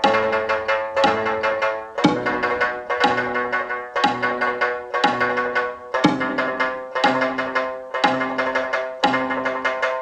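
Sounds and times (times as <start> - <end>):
lute tremolo plucking: 0.0 - 10.0.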